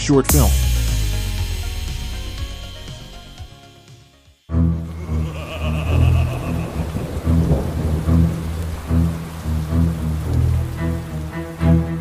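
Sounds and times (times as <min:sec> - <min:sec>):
dark music: 0:00.2 - 0:12.0
low bass pulsing: 0:00.3 - 0:03.8
rain: 0:04.6 - 0:12.0
thunder: 0:06.6 - 0:09.2.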